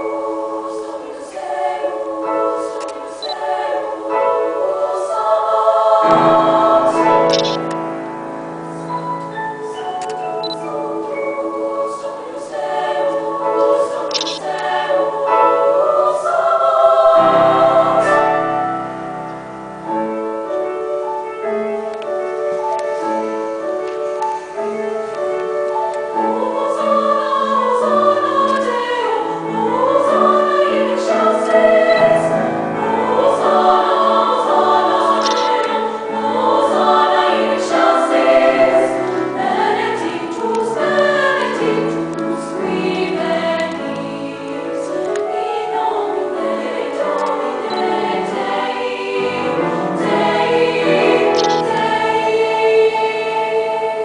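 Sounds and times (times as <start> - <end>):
piano accompaniment: 0.0 - 54.0
treble choir singing: 0.0 - 54.0.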